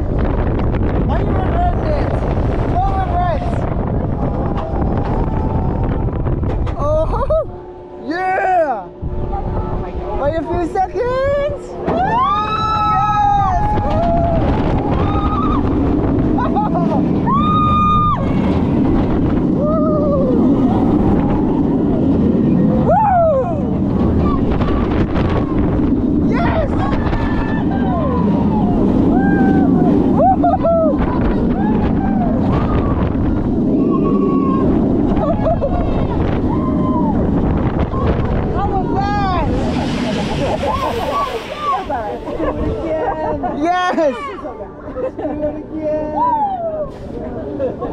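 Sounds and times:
roller coaster rumbling on track: 0:00.0 - 0:47.9
wind rushing on microphone: 0:00.0 - 0:47.9.

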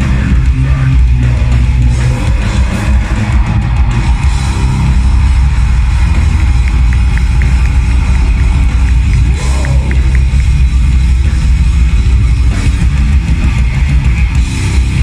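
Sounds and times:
death metal band playing live: 0:00.0 - 0:15.0.

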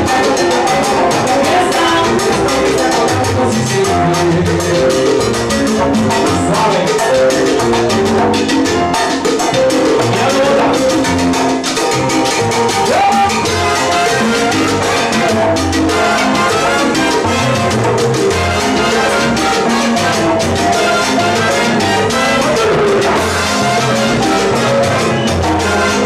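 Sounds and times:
horn section: 0:00.0 - 0:05.0, 0:12.8 - 0:26.0
hand drums: 0:00.0 - 0:26.0
piano: 0:00.0 - 0:26.0
salsa band playing: 0:00.0 - 0:26.0.

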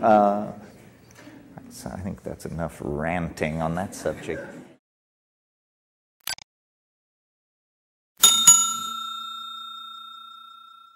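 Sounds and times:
bell ringing: 0:08.2 - 0:10.9.

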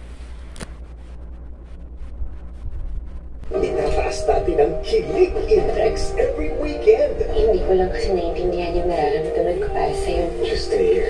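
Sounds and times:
low hum: 0:00.0 - 0:11.0
music with held chord: 0:03.5 - 0:11.0.

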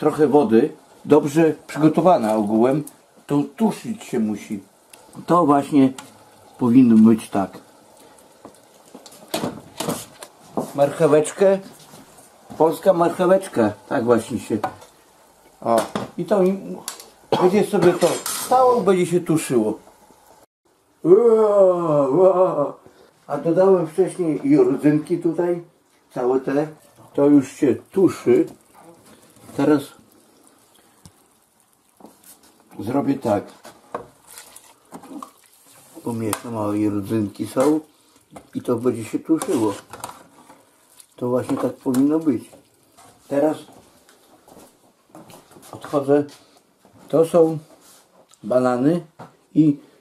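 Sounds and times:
food stewing in a pot: 0:00.0 - 0:21.1, 0:24.8 - 0:48.6
plastic tub scraping and rustling: 0:39.4 - 0:40.6.

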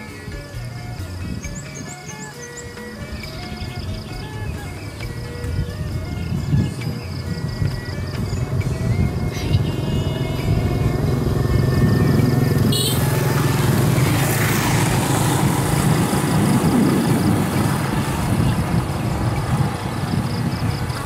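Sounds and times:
music playing: 0:00.0 - 0:21.0
small motorbike engines running: 0:00.0 - 0:21.0.

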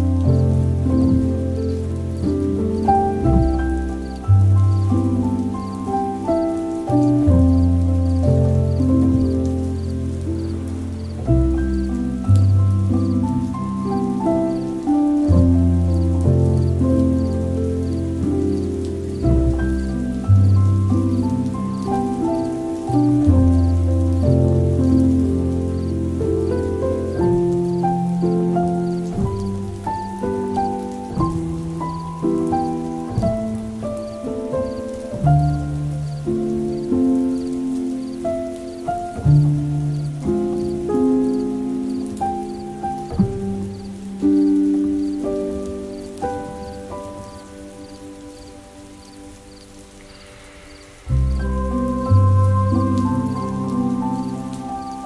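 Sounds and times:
faint rain-like patter: 0:00.0 - 0:55.0
slow solo piano: 0:00.0 - 0:55.0.

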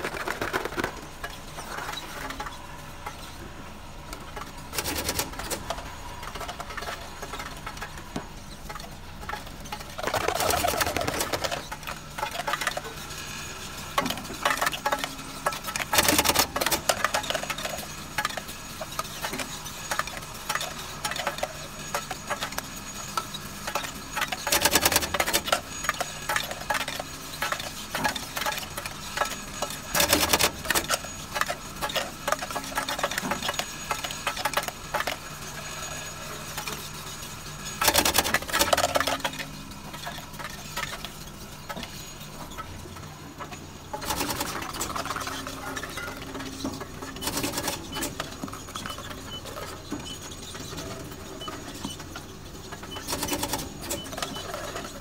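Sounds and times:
gummies and plastic bottles rattling: 0:00.0 - 0:02.5, 0:09.2 - 0:12.9
loud clatter bursts: 0:09.2 - 0:12.8.

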